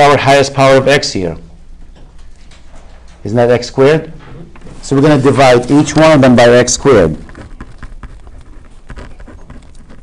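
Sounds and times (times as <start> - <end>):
pen scratching on paper: 5.2 - 10.0.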